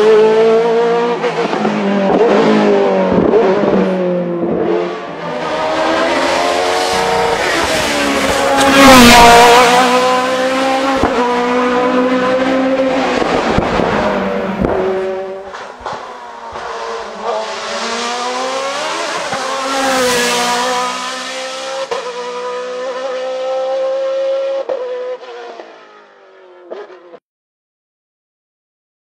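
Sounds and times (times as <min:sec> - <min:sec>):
racing car engine at high revs: 0:00.0 - 0:27.2.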